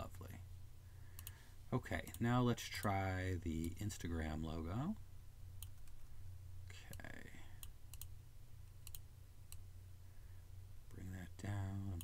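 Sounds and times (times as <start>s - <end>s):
low electrical hum: 0.0s - 12.0s
computer mouse clicks: 1.2s - 1.4s, 6.9s - 8.1s, 8.8s - 9.6s.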